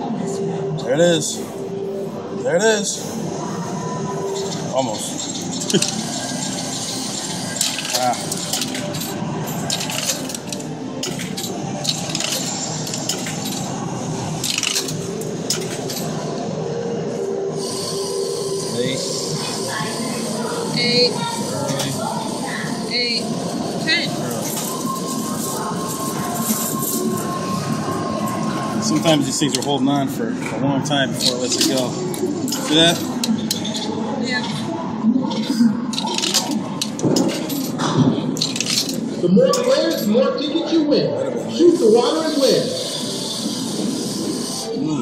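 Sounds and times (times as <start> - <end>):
background chatter: 0.0 - 45.0
metallic coin clinks: 5.2 - 6.9, 7.5 - 13.8, 14.4 - 16.1, 35.9 - 37.7, 38.4 - 40.1.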